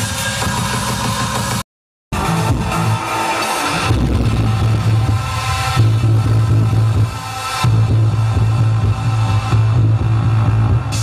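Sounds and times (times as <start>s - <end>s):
electronic dance music: 0.0s - 11.0s
heavy bass line: 0.0s - 11.0s.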